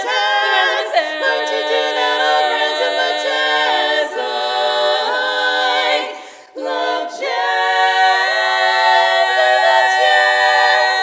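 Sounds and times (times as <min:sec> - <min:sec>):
women singing barbershop harmony: 0:00.0 - 0:11.0.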